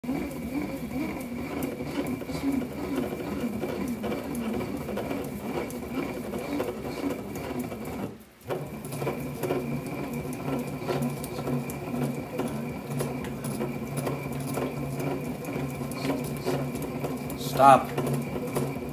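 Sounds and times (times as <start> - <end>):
bat rolling machine clicking: 0.0 - 18.9.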